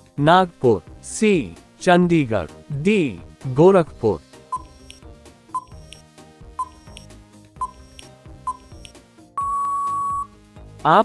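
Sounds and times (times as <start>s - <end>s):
soft background music: 0.0s - 11.0s
short high beeps: 5.6s - 6.0s, 6.6s - 7.0s, 7.6s - 8.8s, 9.4s - 10.3s.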